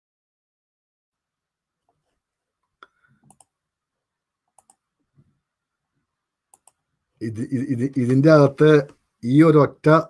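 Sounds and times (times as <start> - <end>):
faint computer clicks: 2.8 - 3.5, 4.6 - 4.8, 6.5 - 6.8.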